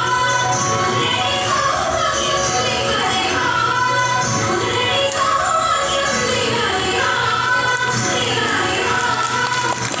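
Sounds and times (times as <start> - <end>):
women singing together: 0.0 - 10.0
hand claps: 7.7 - 10.0.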